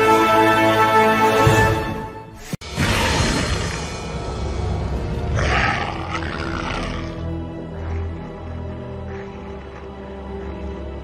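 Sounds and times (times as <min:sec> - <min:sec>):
dark droning horror music: 0:00.0 - 0:11.0
monstrous roar: 0:02.6 - 0:07.4.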